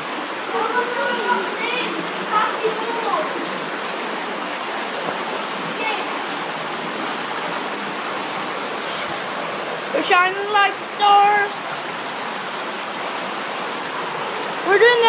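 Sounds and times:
waterfall roaring: 0.0 - 15.0.

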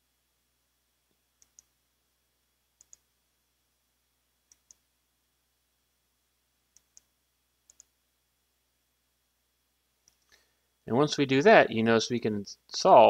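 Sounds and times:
computer mouse clicks: 1.4 - 1.7, 2.8 - 3.1, 4.5 - 4.8, 6.7 - 7.1, 7.7 - 8.0, 10.0 - 10.4.

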